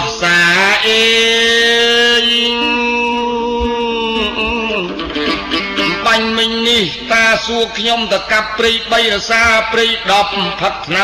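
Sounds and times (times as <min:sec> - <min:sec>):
man chanting a song: 0:00.0 - 0:04.9, 0:05.9 - 0:11.0.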